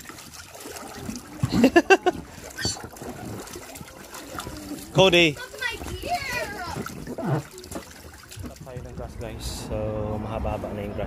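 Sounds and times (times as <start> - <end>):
water lapping in a pool: 0.0 - 11.0
children's voices: 3.8 - 7.9.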